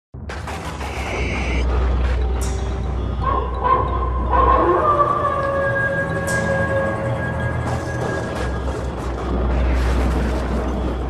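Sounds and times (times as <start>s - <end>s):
long wavering howl: 3.3s - 8.4s.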